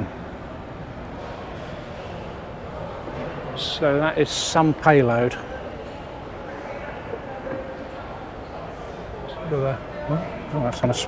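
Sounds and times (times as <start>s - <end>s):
indoor exhibition hall background noise: 0.0s - 11.0s.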